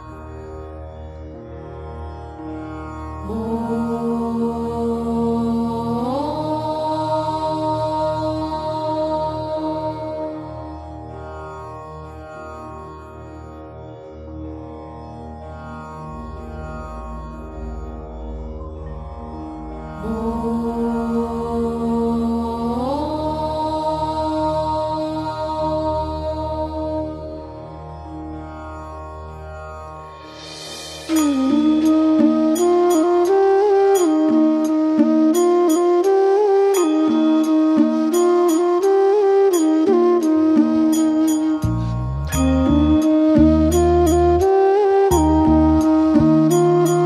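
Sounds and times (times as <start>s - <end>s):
low drone: 0.0s - 35.5s, 38.9s - 47.0s
person chanting held note: 30.9s - 34.4s.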